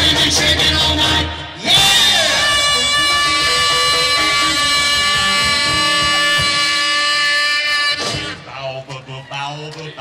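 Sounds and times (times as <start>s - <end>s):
doo-wop rock and roll band: 0.0s - 9.3s.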